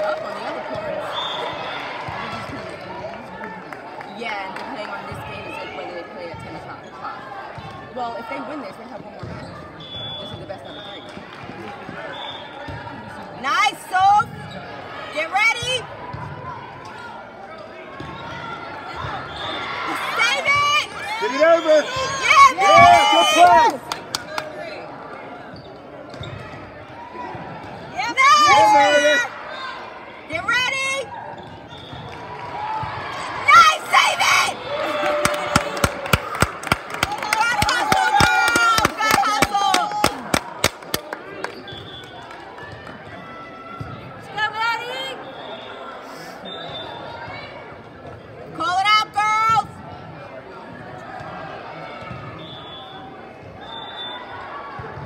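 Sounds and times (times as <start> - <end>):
people calling out and cheering: 18.2 - 24.8, 27.0 - 31.3, 32.3 - 47.7.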